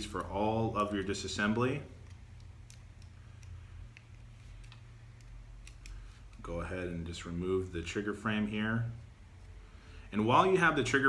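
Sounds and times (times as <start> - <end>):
low steady hum: 0.0 - 11.0
faint clicks and ticks: 1.9 - 6.4.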